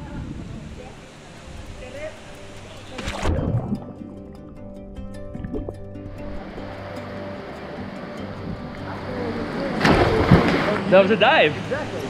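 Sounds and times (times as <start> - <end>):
water rushing and splashing: 0.0 - 4.4, 5.3 - 12.0
music with sustained tones: 0.0 - 12.0.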